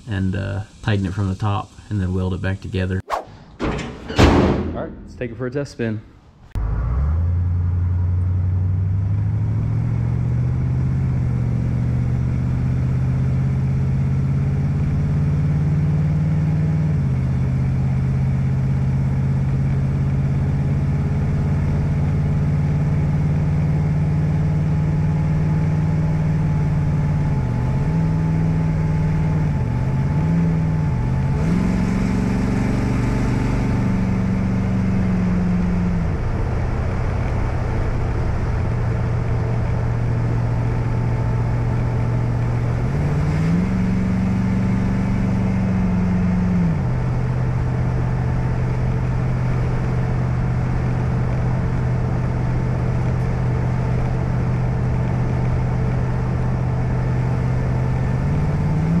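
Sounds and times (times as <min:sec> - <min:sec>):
hiss: 0:00.1 - 0:02.8
car engine accelerating: 0:01.9 - 0:59.0.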